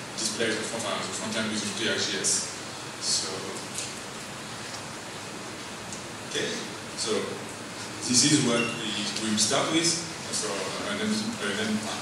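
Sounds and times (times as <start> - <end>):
steady room tone hiss: 0.0 - 12.0.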